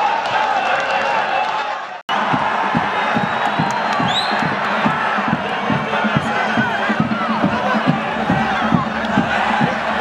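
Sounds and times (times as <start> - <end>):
crowd cheering and chanting: 0.0 - 10.0
steady low drum beat: 2.1 - 10.0.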